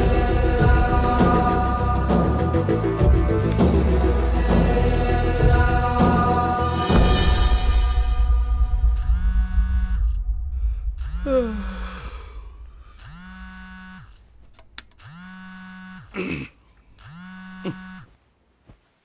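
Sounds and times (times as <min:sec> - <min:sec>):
phone buzzing on wooden table: 0:09.0 - 0:10.1, 0:13.0 - 0:14.2, 0:15.0 - 0:16.2, 0:17.0 - 0:18.1.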